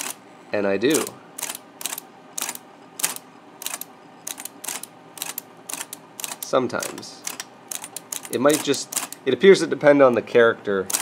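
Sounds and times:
typewriter motor running: 0.0s - 0.2s, 0.9s - 9.3s, 10.8s - 11.0s.

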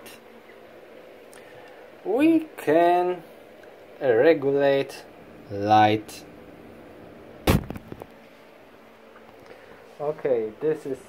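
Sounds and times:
sharp knock: 7.4s - 8.0s.

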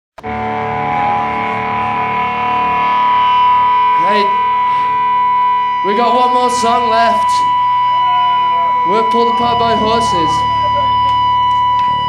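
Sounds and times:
guitar amplifier feedback tones: 0.2s - 12.0s
singer shouting: 5.8s - 11.0s.

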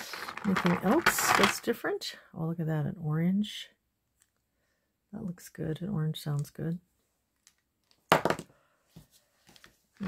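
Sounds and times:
plastic charms clattering into box: 0.0s - 1.7s.

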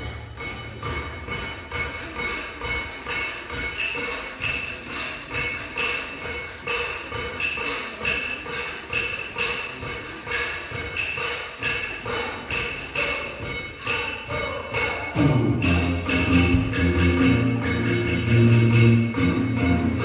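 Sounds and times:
big band music: 0.0s - 20.0s.

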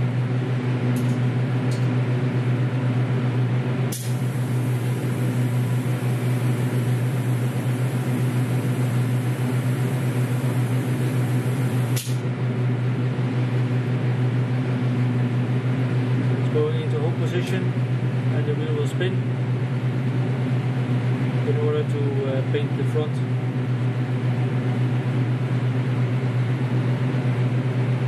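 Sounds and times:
extraction fan humming: 0.0s - 28.0s
spray can click: 3.9s - 4.1s, 11.9s - 12.2s.

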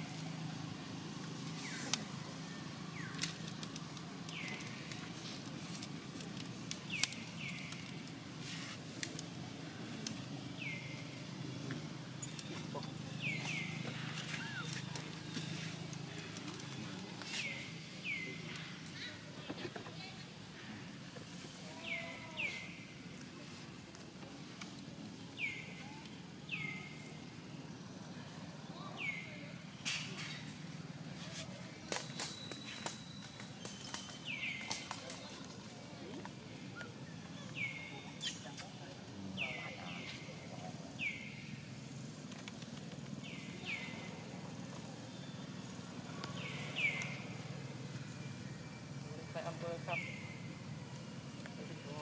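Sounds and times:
steady outdoor hum: 0.0s - 52.0s.

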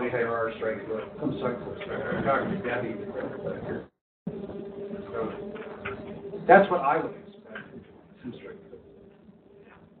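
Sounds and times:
low electrical buzz: 0.0s - 10.0s.

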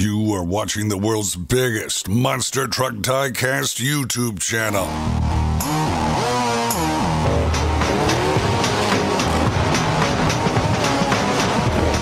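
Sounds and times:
loud rock music: 4.9s - 12.0s.

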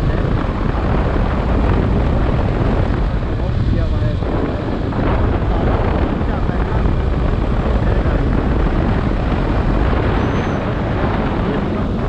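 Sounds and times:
motorcycle engine running: 0.0s - 12.0s
wind rush on microphone: 0.0s - 12.0s.

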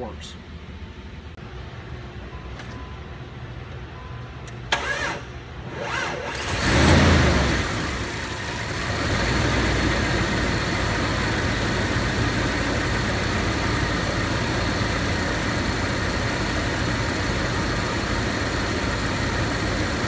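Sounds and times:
vehicle engine idling: 7.2s - 20.0s.

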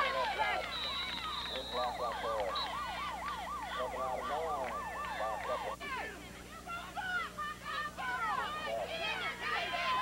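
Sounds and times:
faint voices: 0.0s - 10.0s
siren yelping: 1.1s - 5.8s.

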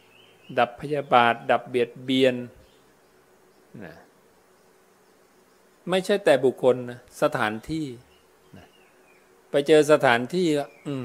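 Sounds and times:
faint wavering insect buzz: 0.0s - 11.0s
low steady hum: 0.0s - 11.0s
man speaking: 0.5s - 2.6s, 3.7s - 4.1s, 5.8s - 8.7s, 9.5s - 11.0s.

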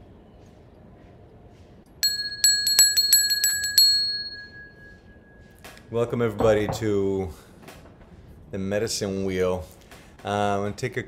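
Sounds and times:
hand bell ringing: 2.0s - 5.4s.

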